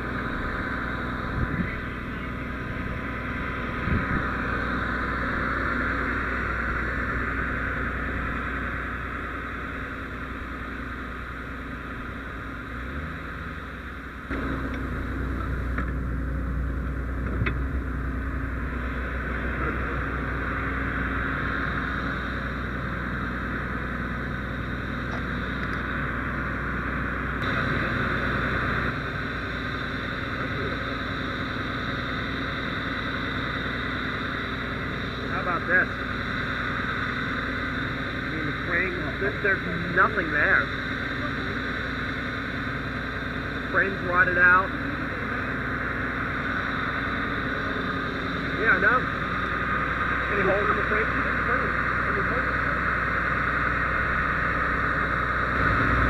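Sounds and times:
engine running with low hum: 0.0 - 56.0
road traffic: 0.0 - 56.0.

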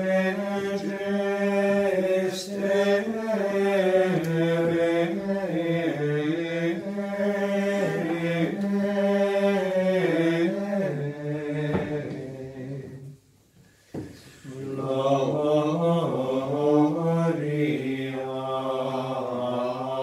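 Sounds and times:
men singing plainchant: 0.0 - 13.1, 14.4 - 20.0.

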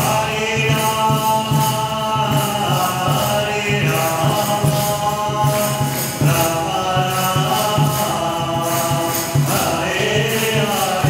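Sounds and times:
high jingle: 0.0 - 11.0
group chanting: 2.3 - 11.0.

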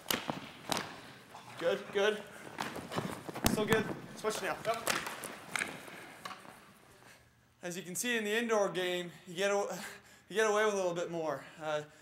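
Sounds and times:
lacrosse sticks clacking: 0.0 - 6.9.

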